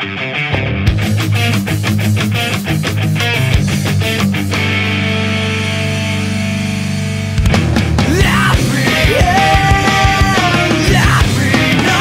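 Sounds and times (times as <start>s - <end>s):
rock band chord ringing: 0.0s - 12.0s.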